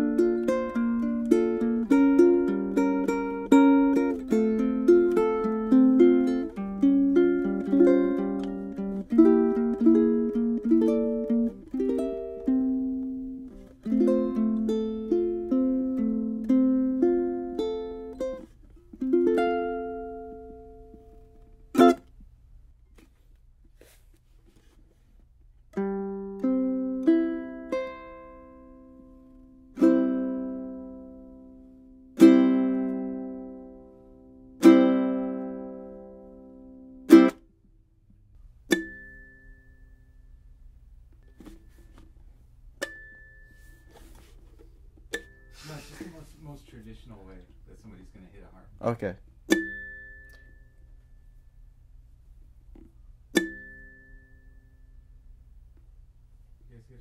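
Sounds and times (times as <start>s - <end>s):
ukulele chords ringing: 0.0s - 22.1s, 25.8s - 37.5s, 38.6s - 44.4s, 45.1s - 46.1s, 49.4s - 51.7s, 53.2s - 55.7s
ukulele picked melody: 0.0s - 22.3s, 25.7s - 37.5s, 38.4s - 46.5s, 49.3s - 51.5s, 52.5s - 55.7s.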